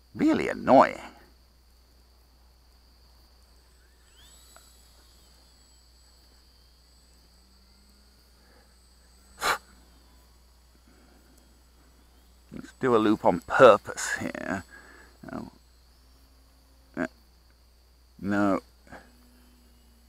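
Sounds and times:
faint high-pitched hum: 0.0 - 20.0
person snorting or sneezing: 9.4 - 9.7.

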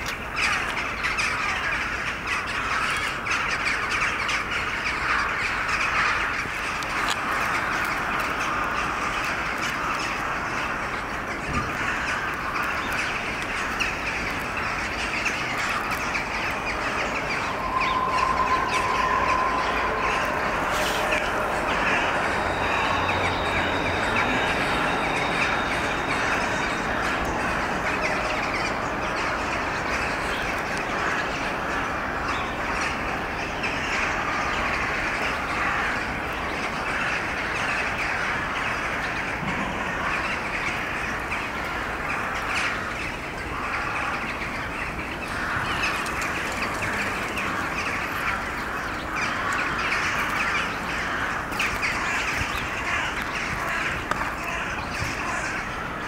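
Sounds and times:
crows cawing chorus: 0.0 - 56.0.

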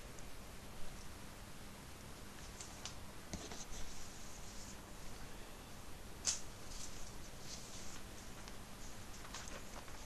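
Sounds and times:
paper rustling: 6.2 - 10.0.

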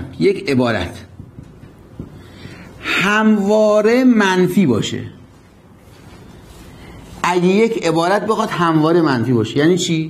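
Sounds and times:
man drawing a breath: 2.2 - 2.8.

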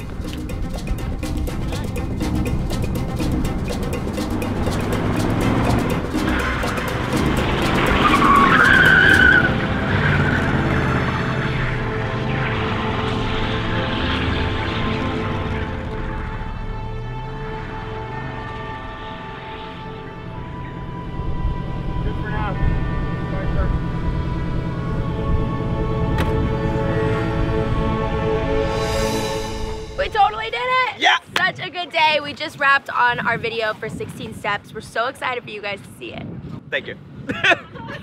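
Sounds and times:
car engine revving: 0.0 - 30.0
music: 0.0 - 31.0
tyres skidding and squealing: 1.0 - 30.7.

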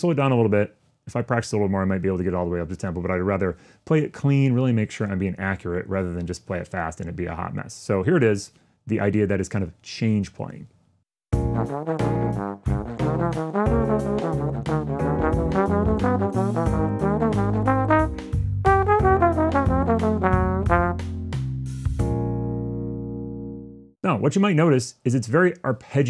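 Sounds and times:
trombone playing fast bebop line: 11.4 - 21.3.

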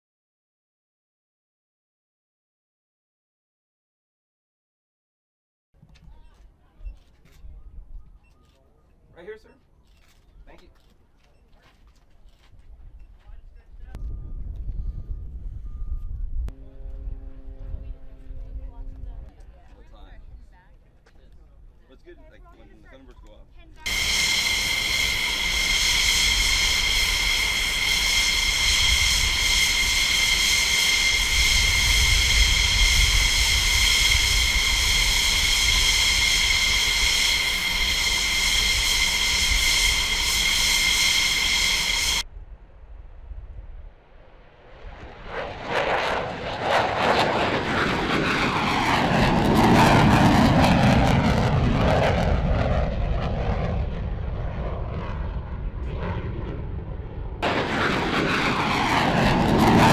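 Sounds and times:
jet engine whining: 23.8 - 42.2, 44.4 - 59.9
jet roar taking off: 23.8 - 42.2, 43.8 - 59.9.

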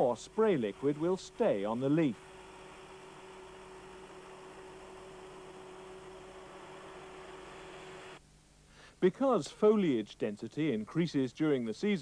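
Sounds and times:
fan hissing and humming: 0.0 - 12.0.

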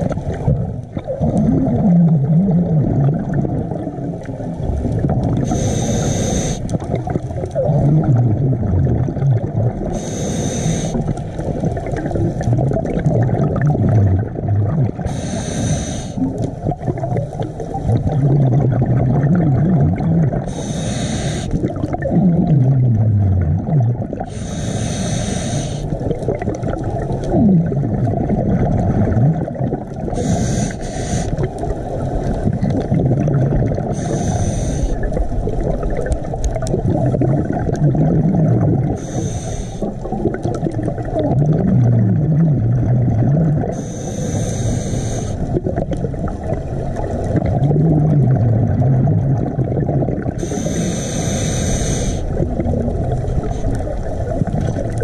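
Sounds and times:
low underwater rumble: 0.0 - 5.8, 6.6 - 10.0, 11.0 - 15.4, 16.1 - 20.8, 21.5 - 24.8, 25.4 - 44.4, 45.2 - 55.0
exhaled bubbles hissing: 0.0 - 55.0.

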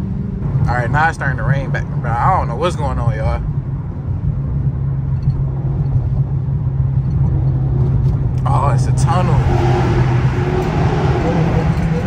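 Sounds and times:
car engine drone inside cabin: 0.0 - 12.0
road rumble: 0.0 - 12.0.

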